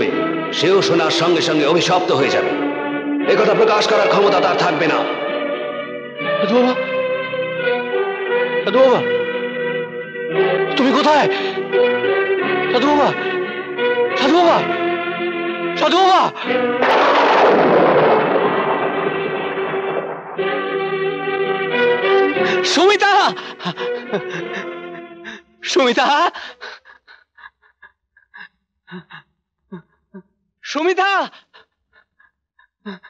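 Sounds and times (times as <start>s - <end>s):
loud boom: 16.6s - 22.1s
panting breaths: 26.4s - 29.2s, 31.3s - 32.2s.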